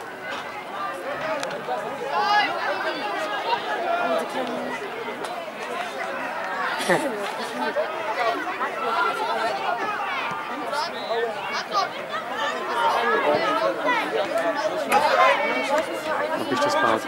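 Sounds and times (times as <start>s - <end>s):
crowd chattering: 0.0s - 17.0s.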